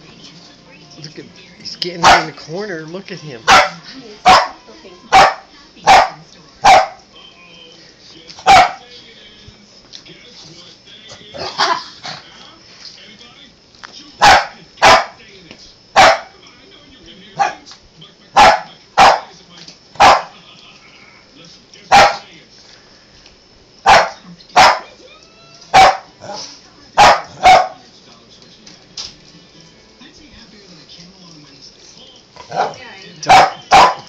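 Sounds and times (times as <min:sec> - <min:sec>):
small dog barking: 0:02.0 - 0:02.4, 0:03.5 - 0:07.0, 0:08.4 - 0:08.8, 0:14.2 - 0:15.2, 0:16.0 - 0:16.3, 0:17.4 - 0:17.7, 0:18.4 - 0:19.3, 0:20.0 - 0:20.3, 0:21.9 - 0:22.2, 0:23.8 - 0:25.0, 0:25.7 - 0:27.8, 0:32.5 - 0:34.0.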